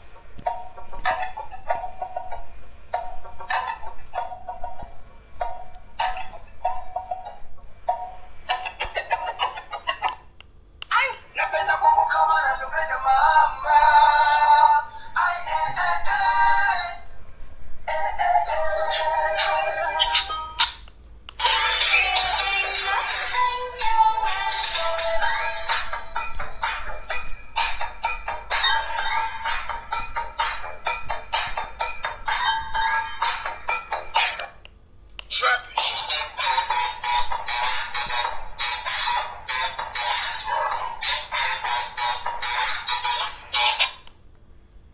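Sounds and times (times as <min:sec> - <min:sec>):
toy speaker playing tinny song: 0:21.4 - 0:34.4, 0:35.4 - 0:44.0.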